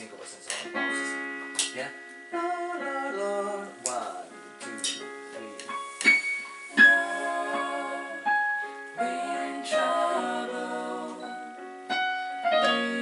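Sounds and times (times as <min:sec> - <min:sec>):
keyboard piano chords: 0:00.0 - 0:13.0
people singing: 0:06.7 - 0:11.6, 0:12.4 - 0:13.0.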